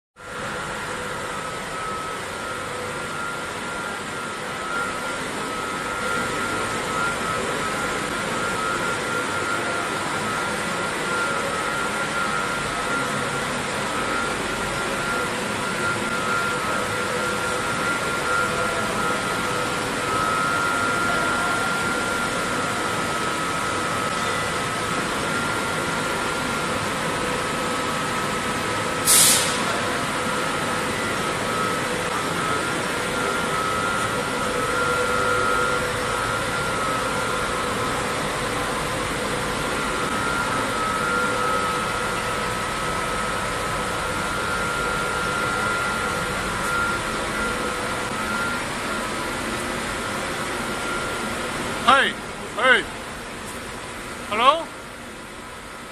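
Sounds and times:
thin whine: 0:00.2 - 0:53.6
extraction fans running: 0:00.2 - 0:55.9
short loud hiss: 0:29.1 - 0:29.7.

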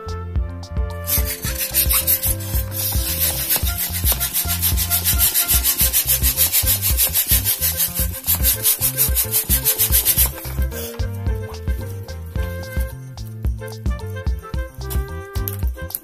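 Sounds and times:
background music: 0:00.0 - 0:16.0
hand pump inflating balloon: 0:01.1 - 0:13.8.

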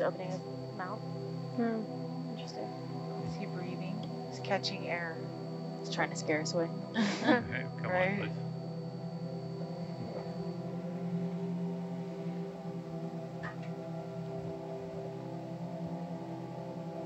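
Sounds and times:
music of long held tones: 0:00.0 - 0:17.0.

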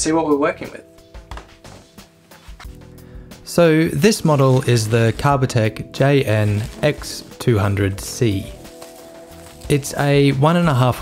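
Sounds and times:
background music held notes: 0:00.0 - 0:11.0.

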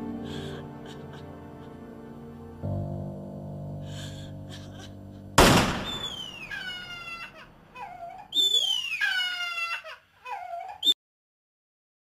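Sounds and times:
gunshot: 0:05.4 - 0:06.6
high crying wails: 0:05.9 - 0:11.0.

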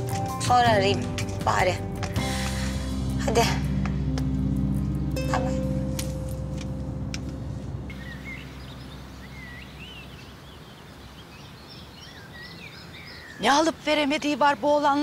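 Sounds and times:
soft background score: 0:00.0 - 0:15.0
small birds chirping: 0:07.9 - 0:15.0.

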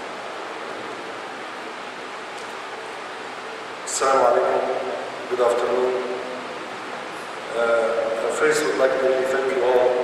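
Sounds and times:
man speaking: 0:07.5 - 0:10.0.

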